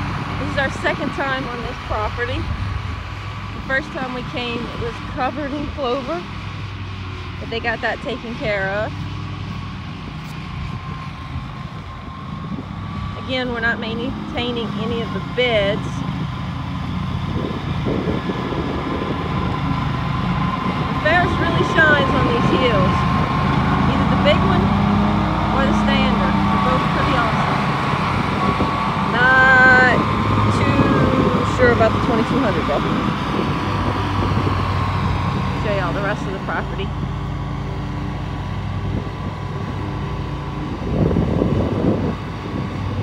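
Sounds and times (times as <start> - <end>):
mower engine running: 0.0 - 43.0.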